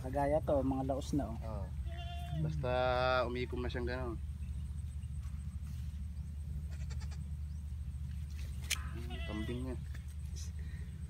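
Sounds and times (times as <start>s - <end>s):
steady low rumble: 0.0s - 11.0s
goat kid bleating: 1.8s - 2.6s, 6.6s - 7.3s, 8.8s - 9.8s.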